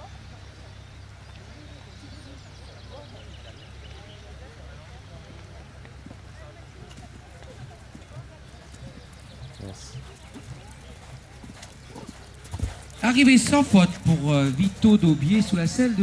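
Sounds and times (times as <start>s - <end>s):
hooves cantering on sand: 0.1s - 16.0s.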